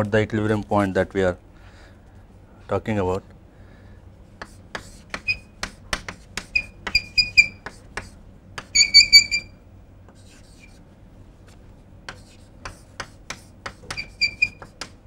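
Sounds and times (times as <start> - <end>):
chalk squeaking: 4.4 - 9.5, 10.2 - 10.8, 12.1 - 15.0
chalk tapping and scratching: 4.4 - 9.5, 10.1 - 10.8, 11.5 - 15.0.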